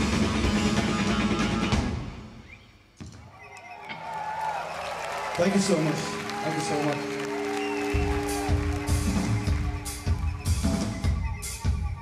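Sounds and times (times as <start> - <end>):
audience cheering: 3.2 - 12.0
audience whooping and whistling: 3.2 - 12.0.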